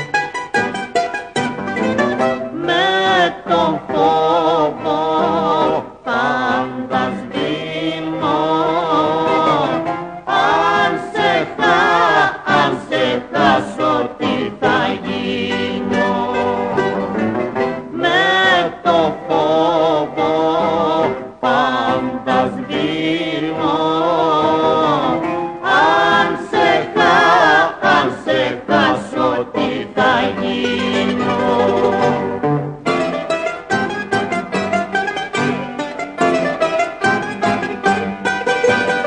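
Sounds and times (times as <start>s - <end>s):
instrumental accompaniment: 0.0s - 39.0s
person singing wavering phrases: 2.5s - 9.6s, 17.9s - 25.0s
person singing ornamented vocal: 2.5s - 17.0s, 17.9s - 32.4s.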